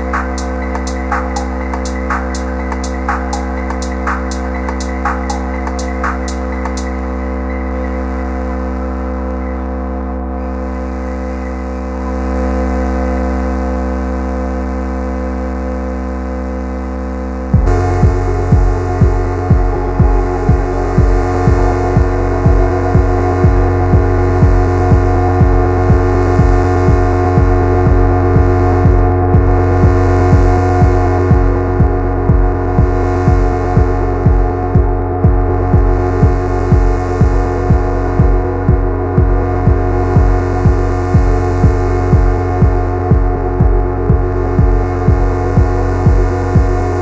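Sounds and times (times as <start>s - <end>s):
steady kick drum: 0.0s - 7.9s, 17.4s - 47.0s
synthesizer drone: 0.0s - 47.0s.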